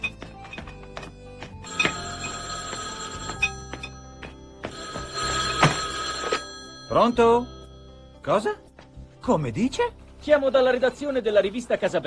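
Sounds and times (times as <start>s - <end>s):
background music: 0.0s - 12.0s
landline telephone ringing: 1.6s - 8.3s.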